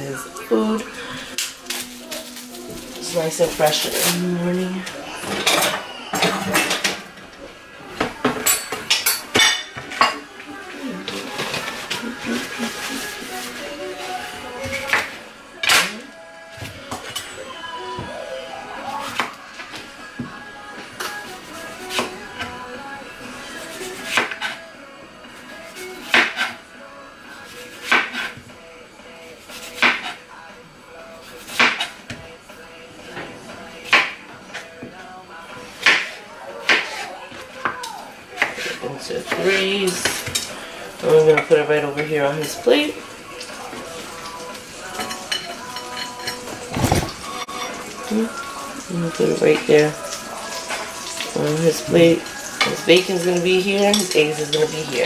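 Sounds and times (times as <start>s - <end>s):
faint background music: 0.0s - 55.0s
kitchenware clatter: 1.4s - 7.4s, 8.0s - 13.6s, 43.7s - 48.6s, 49.4s - 55.0s.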